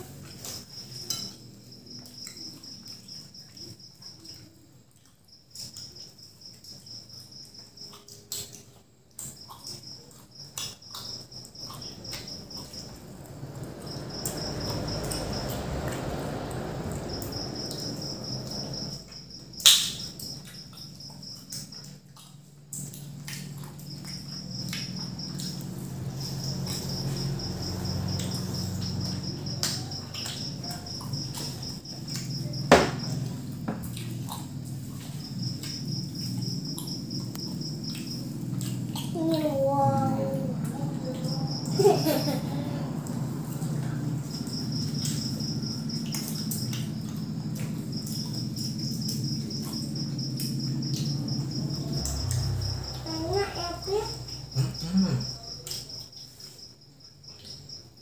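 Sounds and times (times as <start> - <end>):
insect chirping: 0.0 - 58.0
low rumble: 11.8 - 19.5.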